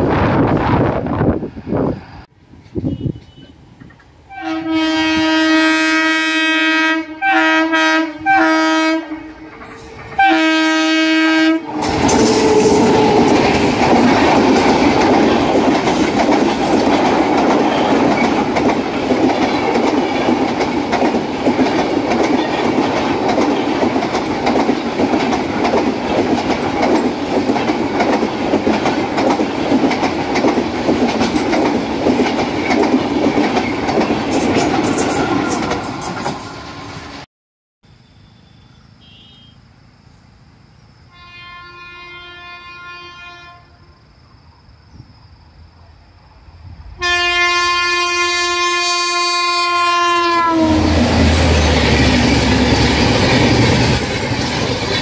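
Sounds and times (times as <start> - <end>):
train horn blasts: 2.8 - 3.6, 4.3 - 13.3, 38.2 - 39.6, 41.1 - 44.0, 47.0 - 51.2
train wheels clickety-clack: 11.7 - 37.2, 50.6 - 55.0.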